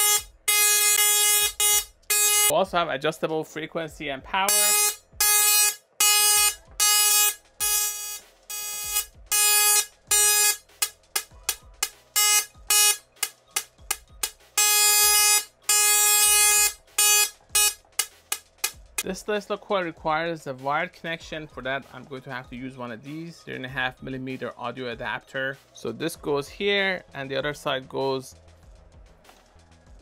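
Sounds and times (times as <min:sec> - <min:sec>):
tesla coil spark buzzing: 0:00.0 - 0:02.5, 0:04.5 - 0:19.0.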